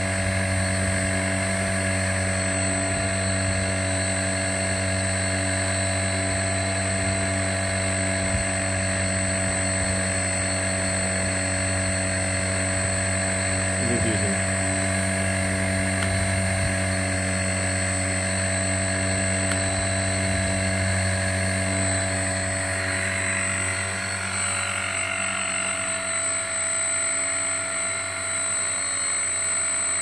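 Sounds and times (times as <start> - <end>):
electric fan humming and whining: 0.0 - 30.0.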